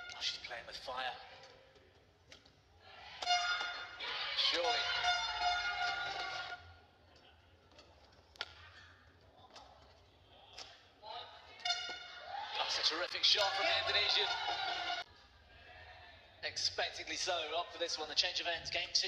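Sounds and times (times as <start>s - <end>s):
crowd shouting and cheering: 2.8s - 6.8s, 11.6s - 16.4s
racket hitting shuttlecock: 3.1s - 4.0s.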